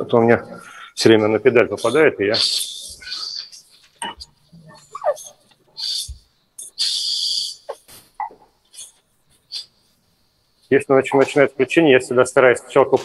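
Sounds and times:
faint murmuring: 0.0 - 9.8
bursts of high hiss: 5.8 - 11.4.

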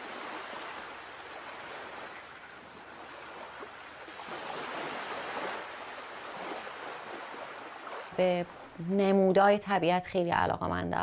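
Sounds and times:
sea waves washing: 0.0 - 8.9.

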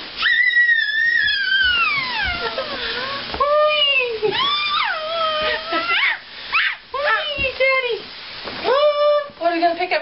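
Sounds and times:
baby squealing: 0.2 - 3.2, 4.3 - 6.8
baby crying: 0.2 - 3.3, 4.3 - 6.8.

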